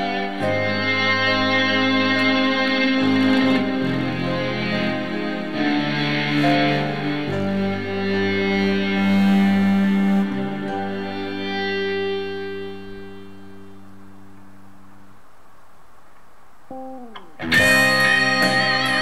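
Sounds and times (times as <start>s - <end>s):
distorted electric guitar notes: 0.0s - 15.3s, 16.7s - 19.0s.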